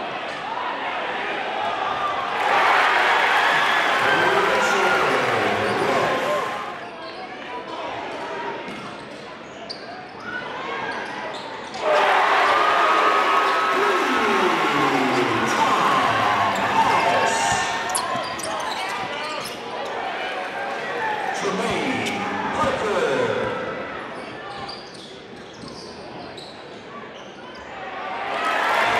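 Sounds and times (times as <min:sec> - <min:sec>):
echoing crowd voices: 0:00.0 - 0:07.0, 0:11.7 - 0:24.8.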